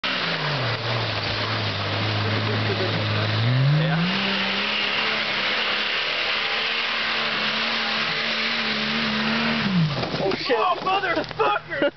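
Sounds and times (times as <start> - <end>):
car engine revving hard: 0.0 - 10.2.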